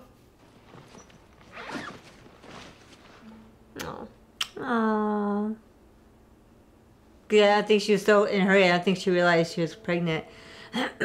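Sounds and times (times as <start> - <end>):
rustling scrape: 0.4 - 3.4.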